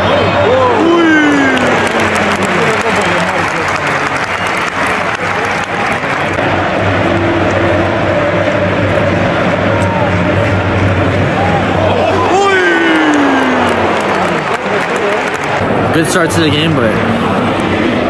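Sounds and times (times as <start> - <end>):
crowd groaning: 0.0 - 4.1, 5.8 - 15.9
stadium crowd din and clapping: 0.0 - 18.0.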